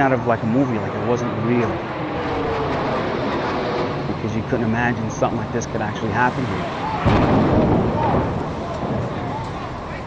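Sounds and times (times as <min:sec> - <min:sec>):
steady rumbling noise: 0:00.0 - 0:10.0.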